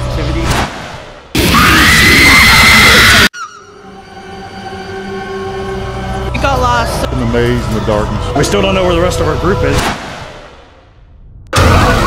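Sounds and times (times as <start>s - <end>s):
low music drone: 3.6s - 10.9s.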